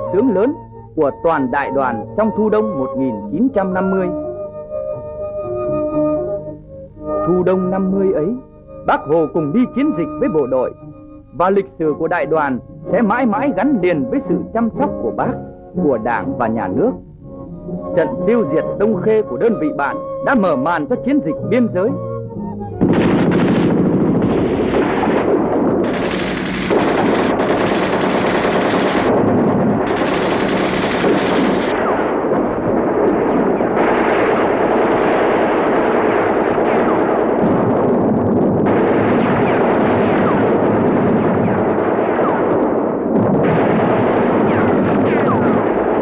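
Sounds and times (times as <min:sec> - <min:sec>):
single gunshots: 0:22.8 - 0:38.0, 0:38.6 - 0:46.0
machine-gun bursts: 0:25.8 - 0:32.0.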